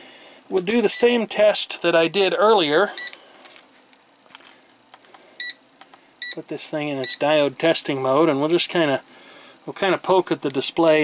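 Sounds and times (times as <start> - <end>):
multimeter leads being handled: 3.0 - 5.2.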